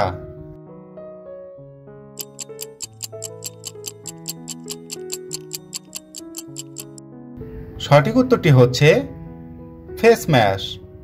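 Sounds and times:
background music with held notes: 0:00.0 - 0:11.0
fast clock ticking: 0:02.2 - 0:07.0.

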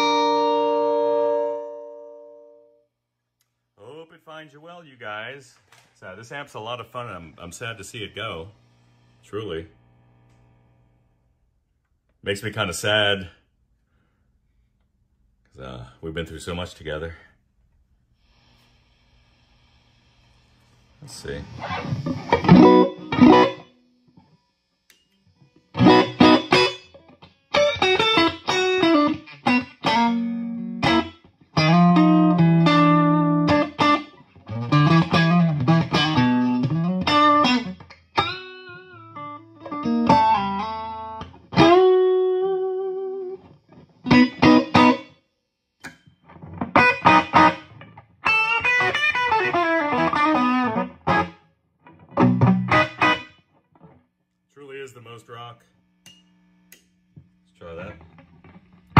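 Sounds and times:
electric guitar riffs and chords: 0:00.0 - 0:02.8, 0:21.4 - 0:23.9, 0:25.4 - 0:45.2, 0:46.2 - 0:54.0.

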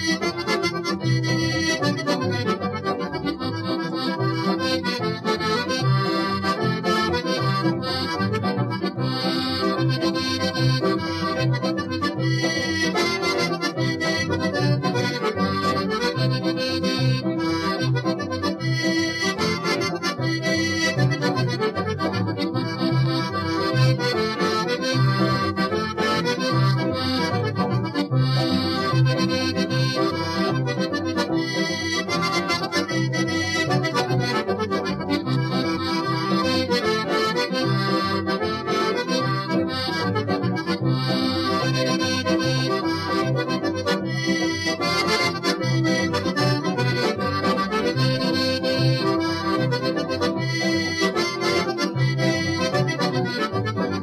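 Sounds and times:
accordion-led band playing a jig: 0:00.0 - 0:54.0.

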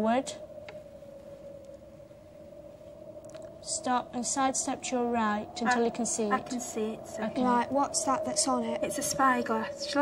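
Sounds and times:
faint steady drone: 0:00.0 - 0:10.0
low background hiss: 0:00.0 - 0:10.0.

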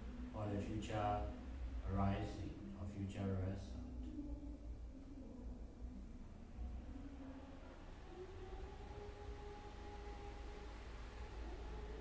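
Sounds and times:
faint steady hum: 0:00.0 - 0:12.0
low steady rumble: 0:00.0 - 0:12.0.

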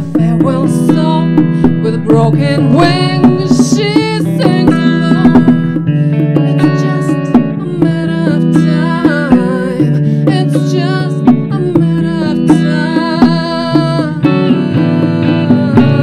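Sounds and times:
bongos: 0:00.0 - 0:16.0
electric guitar: 0:00.0 - 0:16.0
woman singing with vibrato: 0:00.0 - 0:16.0.

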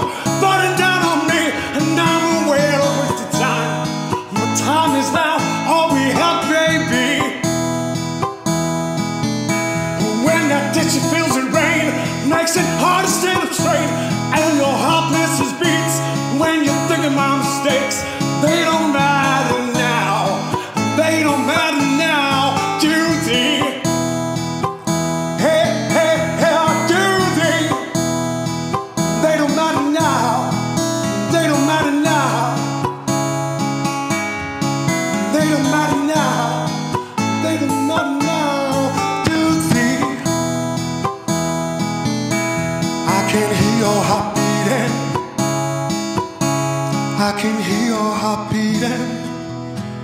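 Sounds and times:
acoustic guitar strumming: 0:00.0 - 0:50.0
bending melody line: 0:00.0 - 0:50.0.

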